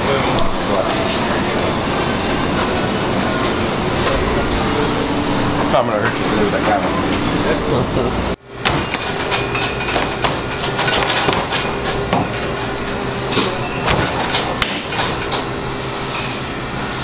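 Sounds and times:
kitchen equipment hum: 0:00.0 - 0:17.0.

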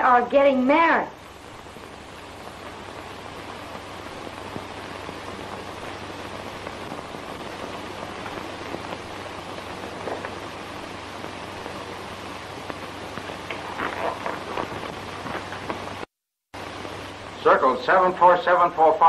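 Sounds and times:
faint crackles: 0:00.0 - 0:19.0
steady hiss: 0:00.0 - 0:19.0
low hum: 0:01.1 - 0:16.0.

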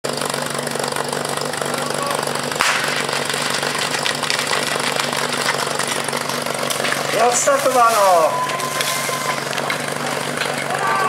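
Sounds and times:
pump engine idling: 0:00.0 - 0:11.0
people running: 0:01.6 - 0:11.0
sudden sharp start signal: 0:07.8 - 0:09.5.

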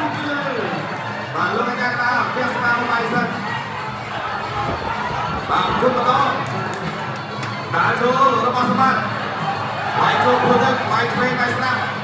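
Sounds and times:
arena crowd voices: 0:00.0 - 0:12.0.

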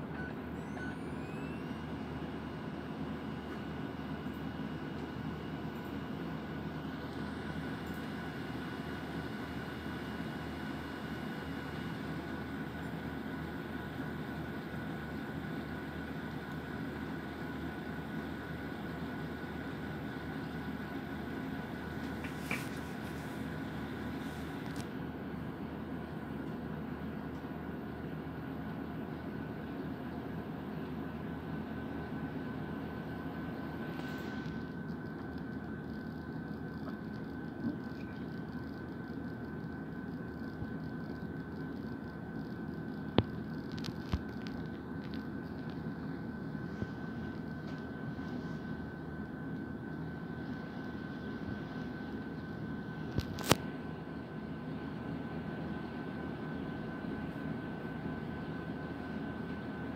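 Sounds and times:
faint high whine: 0:00.0 - 0:59.9
machine hum and hiss: 0:00.0 - 0:59.9.

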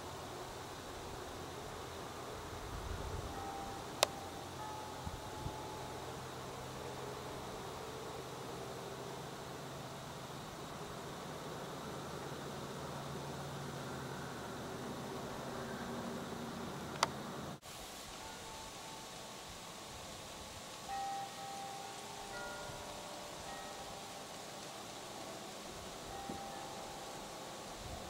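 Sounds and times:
steady hiss: 0:00.0 - 0:28.0.

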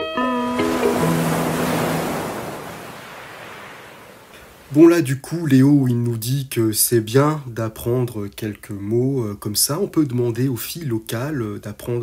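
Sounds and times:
held guitar notes: 0:00.0 - 0:02.2
ocean waves washing on shore: 0:00.3 - 0:05.0.

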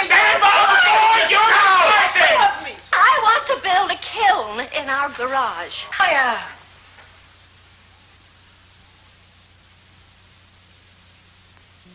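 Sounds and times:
faint steady hiss: 0:00.0 - 0:11.9.

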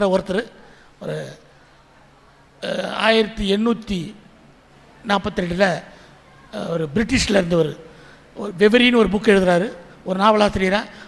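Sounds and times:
man speaking into a microphone: 0:00.0 - 0:01.5, 0:02.6 - 0:04.3, 0:05.0 - 0:11.0.

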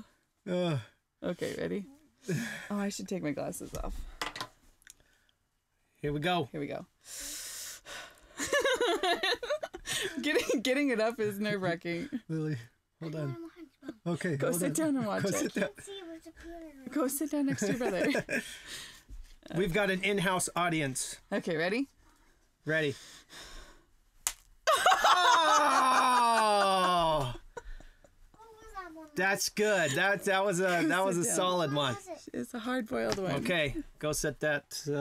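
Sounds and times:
person breathing: 0:02.2 - 0:02.8, 0:07.0 - 0:08.4, 0:09.8 - 0:10.2, 0:18.4 - 0:19.1, 0:22.9 - 0:23.9
laughter: 0:08.4 - 0:10.6, 0:14.0 - 0:15.8, 0:17.5 - 0:18.5, 0:24.7 - 0:28.0
loud laughing exclamation: 0:24.7 - 0:27.6.

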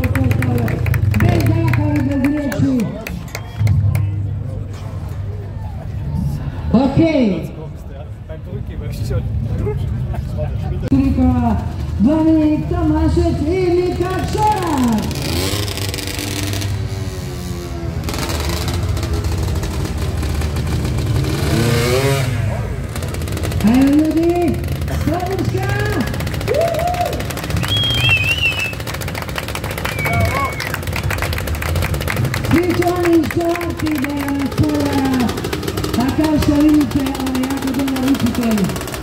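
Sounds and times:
quad engine revving: 0:13.8 - 0:39.0.

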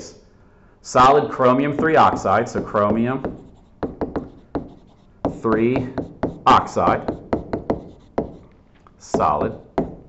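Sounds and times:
stylus tapping on tablet: 0:01.7 - 0:08.5.

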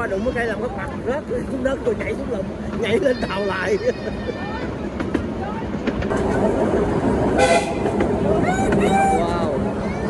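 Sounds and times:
train running on track: 0:00.0 - 0:10.0.

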